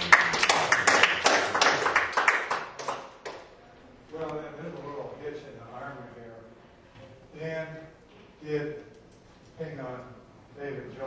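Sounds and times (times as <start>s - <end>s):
small audience applauding: 0.0s - 3.5s.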